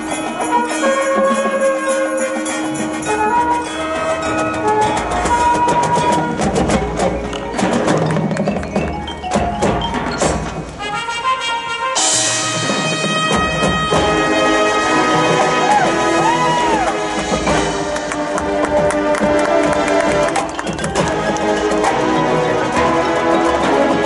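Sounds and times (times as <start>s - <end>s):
marching band playing: 0.0s - 24.0s.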